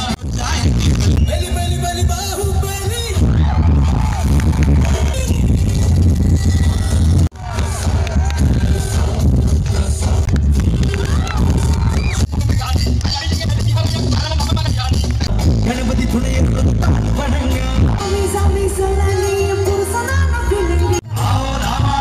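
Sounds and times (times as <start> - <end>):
live band music with heavy bass: 0.0 - 22.0
person singing: 15.3 - 22.0.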